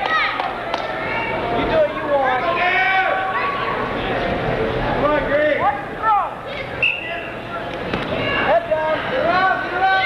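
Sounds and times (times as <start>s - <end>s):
people shouting in a gym: 0.0s - 4.2s, 5.6s - 10.0s.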